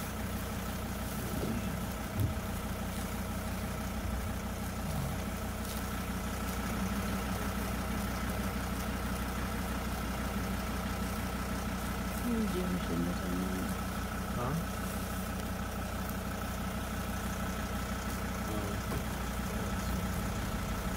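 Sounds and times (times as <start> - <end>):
engine idling: 0.0 - 20.9
faint whine: 1.0 - 8.6.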